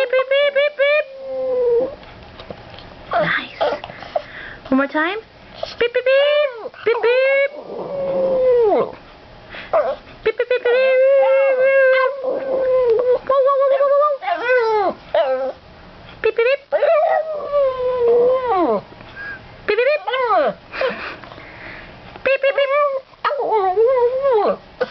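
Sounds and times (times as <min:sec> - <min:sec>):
dog howling: 0:06.5 - 0:09.0, 0:10.6 - 0:15.6, 0:16.8 - 0:18.8, 0:22.6 - 0:24.6.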